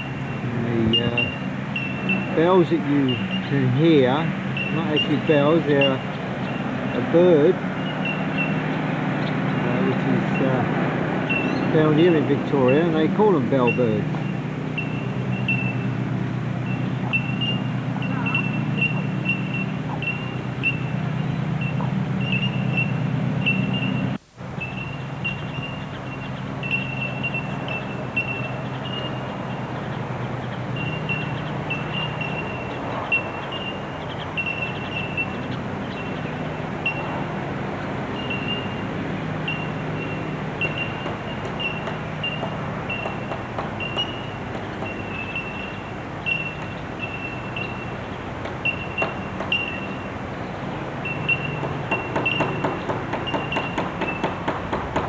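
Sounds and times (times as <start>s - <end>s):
bell-like bird calls: 0.0s - 16.0s, 16.6s - 54.4s.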